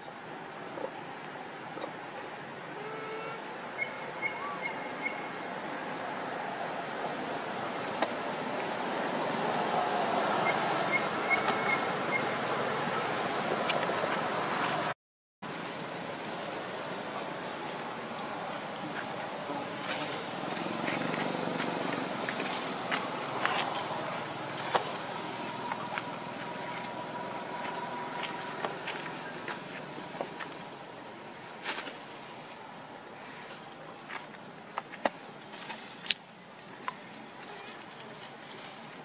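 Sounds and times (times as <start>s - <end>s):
steady background hiss: 0.0s - 14.9s, 15.5s - 39.0s.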